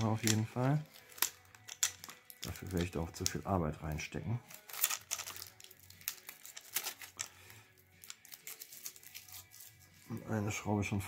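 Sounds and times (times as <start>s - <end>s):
plastic film crinkling: 0.0s - 10.2s.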